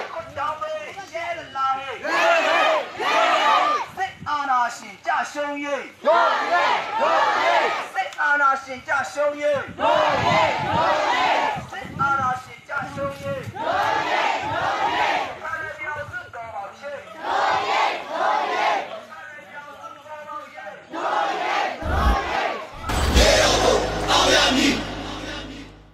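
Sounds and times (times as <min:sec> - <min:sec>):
crowd chanting slogans: 0:02.0 - 0:03.8, 0:06.0 - 0:08.0, 0:09.8 - 0:11.6, 0:13.6 - 0:15.4, 0:17.1 - 0:19.0, 0:20.8 - 0:25.9
low thump: 0:21.8 - 0:25.9.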